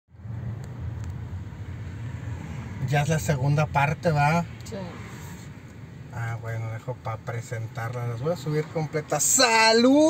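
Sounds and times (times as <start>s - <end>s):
car engine rumble: 0.1s - 10.0s
road noise inside car: 0.1s - 10.0s.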